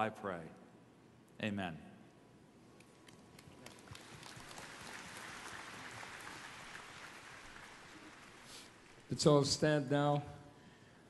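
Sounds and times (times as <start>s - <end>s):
faint applause: 3.4s - 9.1s.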